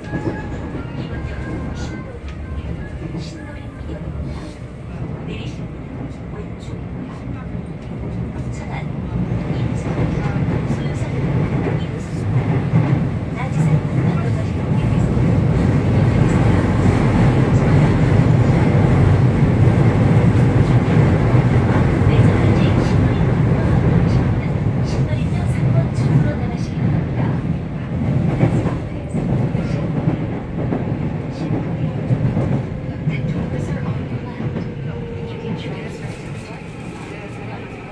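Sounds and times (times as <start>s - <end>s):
train wheels rumbling on rail: 0.0s - 37.9s.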